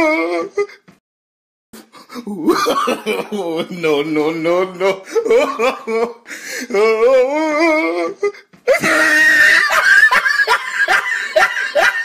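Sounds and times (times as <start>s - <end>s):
person laughing high-pitched: 7.5s - 12.0s.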